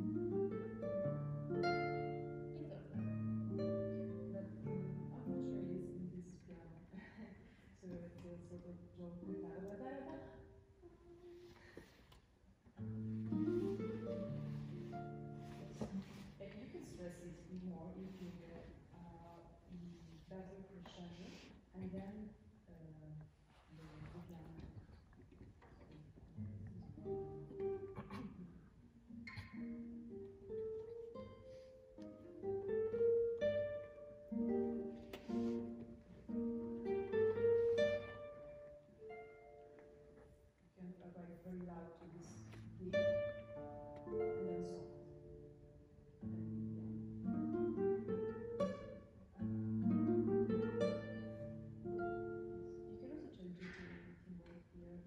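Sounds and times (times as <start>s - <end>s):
classical guitars playing: 0.0s - 22.6s, 24.0s - 55.0s.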